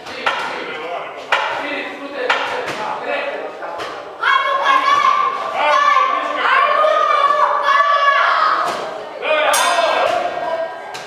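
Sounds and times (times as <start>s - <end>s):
people shouting: 4.2s - 10.6s.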